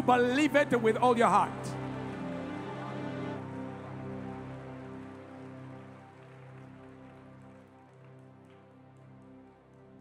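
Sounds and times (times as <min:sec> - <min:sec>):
congregation applauding: 0:00.0 - 0:10.0.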